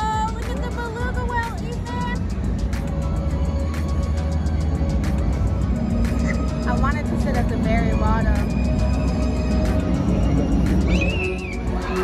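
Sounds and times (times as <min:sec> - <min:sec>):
music over stadium sound system: 0:00.0 - 0:12.0.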